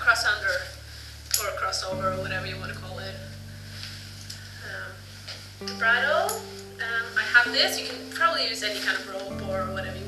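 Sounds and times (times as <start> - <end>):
low steady hum: 0.0 - 10.0
faint rustling: 0.1 - 10.0.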